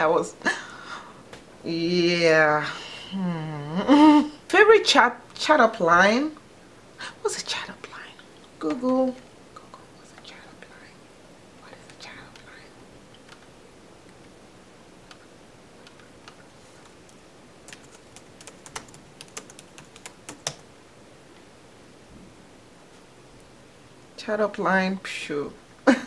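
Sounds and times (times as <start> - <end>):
faint muttered whispering: 9.5 - 11.0, 11.6 - 12.8.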